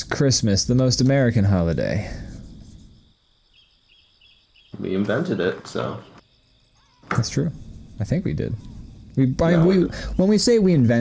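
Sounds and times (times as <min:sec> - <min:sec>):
man talking: 0:04.8 - 0:06.2, 0:07.0 - 0:11.0.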